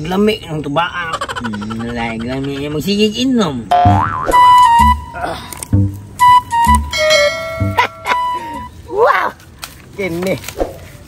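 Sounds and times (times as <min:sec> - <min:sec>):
synthetic tones and boings: 0:03.7 - 0:05.2.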